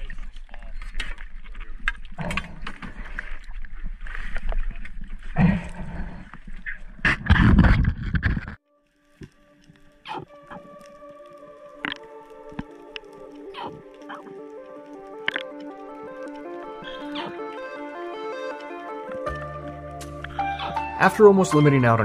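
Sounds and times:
wind: 0.0s - 8.6s
music of held tones: 8.6s - 22.0s
sharp clicks: 9.2s - 19.3s.

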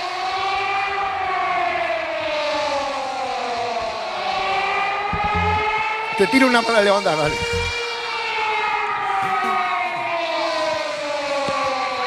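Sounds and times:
siren-like wail: 0.0s - 12.0s
low thumps: 5.1s - 5.8s, 7.3s - 7.8s.

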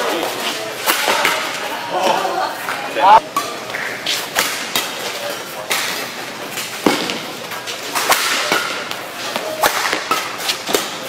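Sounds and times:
rackets striking shuttlecock: 0.8s - 1.5s, 3.2s - 5.0s, 5.6s - 11.0s.

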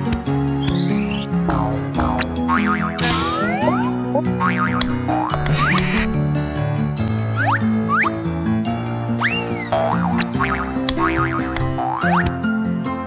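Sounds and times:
cartoon background music: 0.0s - 13.0s.

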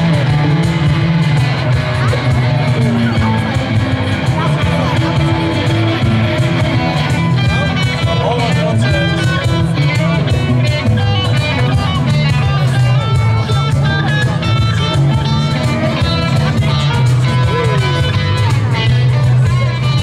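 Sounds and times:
guitar lead line: 0.0s - 20.0s
steady bass: 0.0s - 20.0s
strummed guitars: 0.0s - 20.0s.

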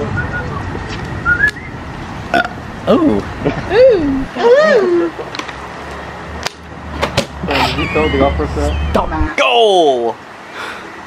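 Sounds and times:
high whistled chirps: 0.0s - 1.8s, 7.6s - 9.6s.

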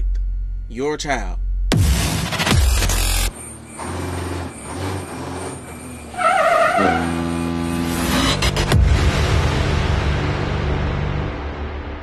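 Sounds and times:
truck engine rumble: 3.0s - 9.1s
music: 7.8s - 12.0s.

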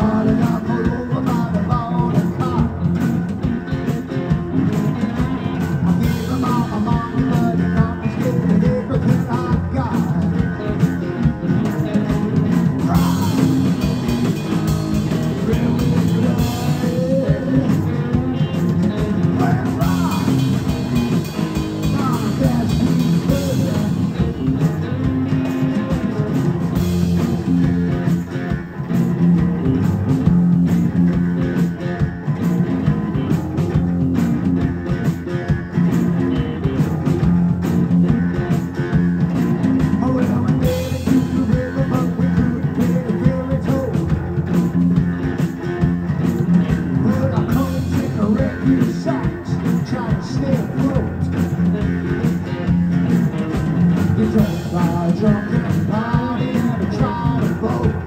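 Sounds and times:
drum kit: 0.0s - 58.0s
electric bass: 0.0s - 58.0s
electric guitar: 0.0s - 58.0s.

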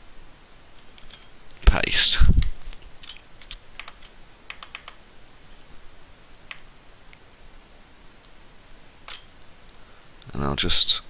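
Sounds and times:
keyboard and mouse clicks: 2.4s - 5.0s, 6.4s - 6.7s, 9.1s - 9.3s.

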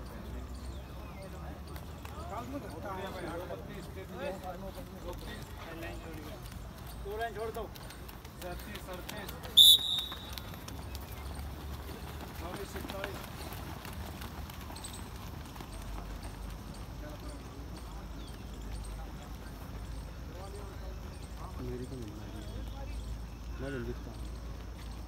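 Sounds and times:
runners' footsteps on track: 0.0s - 25.0s
high-pitched whistle blast: 9.6s - 10.4s.

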